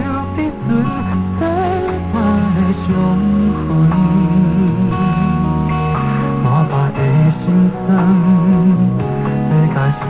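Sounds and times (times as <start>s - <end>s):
slow ballad with guitar: 0.0s - 10.0s
vibrato melody line: 0.0s - 10.0s.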